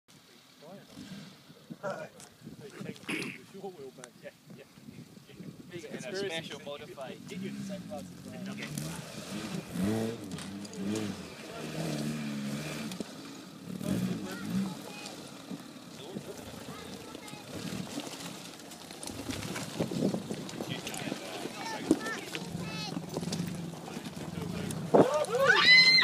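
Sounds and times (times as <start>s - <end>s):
off-road engine revving: 0.7s - 2.1s, 6.0s - 26.0s
people talking: 1.8s - 9.1s, 10.8s - 12.1s, 13.7s - 15.3s, 15.9s - 17.8s, 20.6s - 26.0s.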